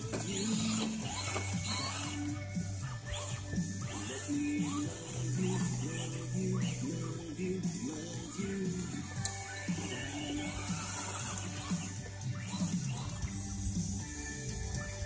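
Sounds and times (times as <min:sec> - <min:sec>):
music playing on radio: 0:00.0 - 0:15.0.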